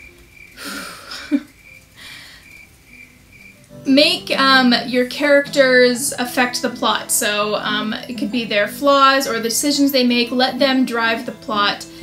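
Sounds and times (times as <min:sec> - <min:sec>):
soft background music: 0:00.0 - 0:12.0
breaths: 0:02.0 - 0:02.6.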